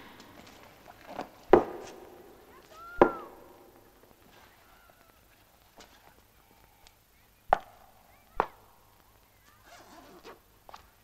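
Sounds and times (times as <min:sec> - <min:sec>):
handling rustle: 0:00.0 - 0:07.0, 0:09.0 - 0:11.0.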